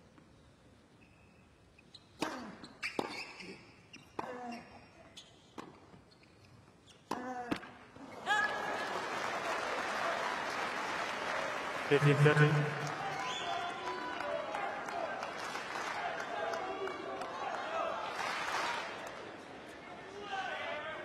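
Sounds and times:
crowd applause and cheering: 8.2s - 19.2s.

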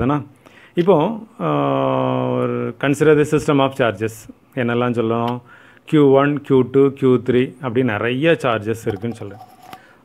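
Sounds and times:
man speaking: 0.0s - 9.5s.

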